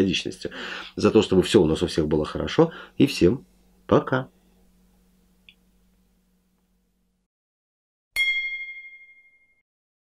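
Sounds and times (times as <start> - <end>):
bell-like metallic ding: 8.2 - 9.6.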